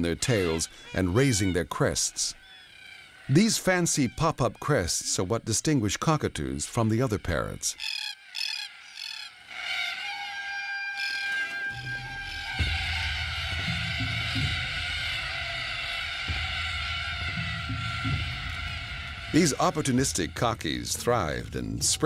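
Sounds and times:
cockatoos calling harshly: 0.0s - 5.4s, 6.0s - 22.0s
background music of held notes: 11.7s - 22.0s
steady low bass: 11.8s - 22.0s.

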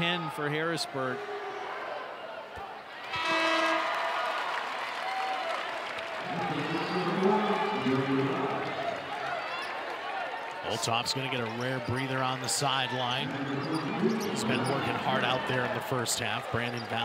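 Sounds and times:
crowd cheering: 1.0s - 17.0s
held horn tone: 3.2s - 4.1s
voices in crowd: 6.2s - 17.0s.

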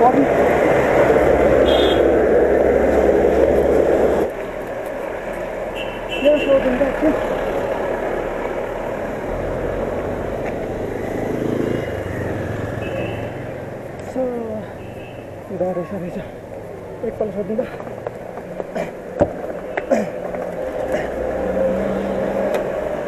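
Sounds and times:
road noise on wet road: 0.0s - 23.0s.

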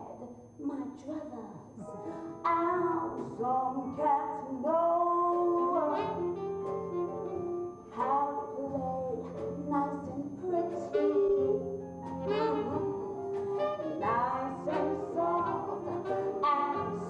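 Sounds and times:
instrumental accompaniment: 1.8s - 17.0s
woman singing: 2.4s - 6.4s, 7.9s - 12.9s, 14.0s - 17.0s.

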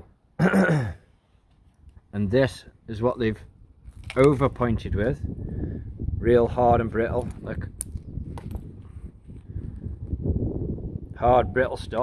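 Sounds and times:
wind buffeting microphone: 3.2s - 12.0s.

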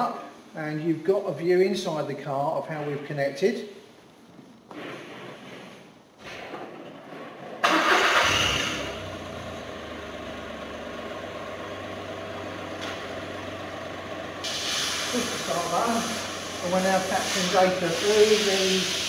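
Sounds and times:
car engine starting and idling: 6.8s - 16.6s
hiss: 14.4s - 19.0s.

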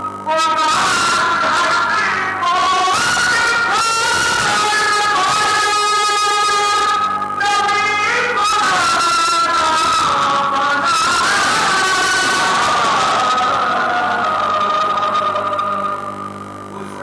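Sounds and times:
person singing devotional song: 0.0s - 16.2s
harmonium held tones: 0.0s - 17.0s.

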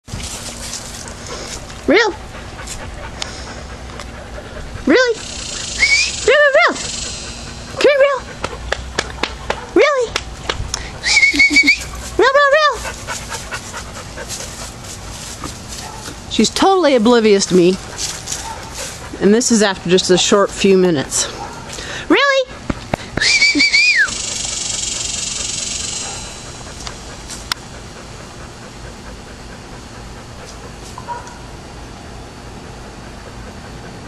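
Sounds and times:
dog panting rapidly: 0.2s - 31.4s, 32.2s - 34.0s
person calling loudly: 4.8s - 7.1s, 11.0s - 12.9s.

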